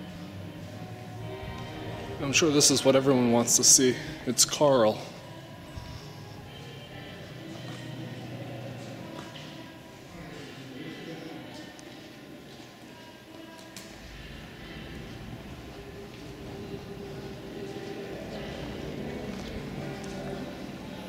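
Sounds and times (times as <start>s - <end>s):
people talking indistinctly: 0.0s - 21.0s.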